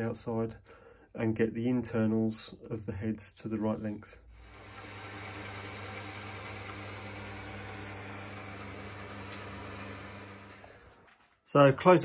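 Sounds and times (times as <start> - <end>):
lathe motor hum with whine: 4.4 - 10.8.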